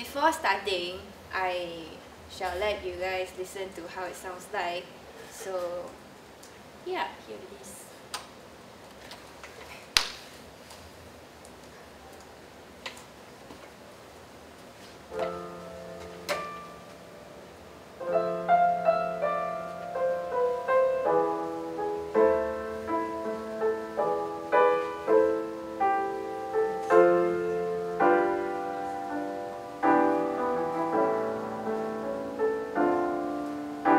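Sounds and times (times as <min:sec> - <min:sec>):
piano music over loudspeakers: 0:15.1 - 0:33.9.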